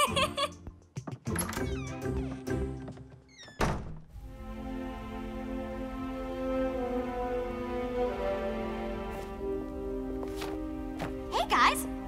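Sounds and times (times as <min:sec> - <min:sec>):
giggle: 0:00.0 - 0:00.6
light music: 0:04.2 - 0:12.0.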